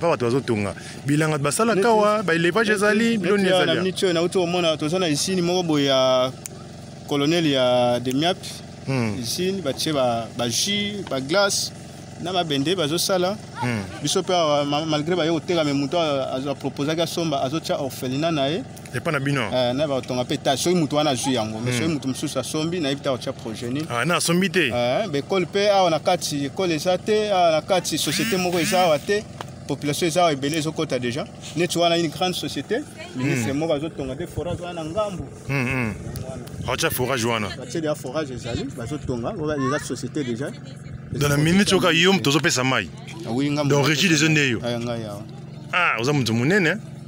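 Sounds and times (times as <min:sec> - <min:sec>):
man speaking: 0:00.0 - 0:04.2, 0:08.8 - 0:09.7, 0:21.1 - 0:22.6, 0:23.6 - 0:25.2, 0:27.8 - 0:29.2, 0:33.2 - 0:37.8, 0:41.2 - 0:44.6, 0:45.7 - 0:46.8
man talking: 0:00.0 - 0:05.9, 0:07.2 - 0:11.7, 0:19.0 - 0:27.1, 0:27.7 - 0:40.1, 0:41.2 - 0:46.8.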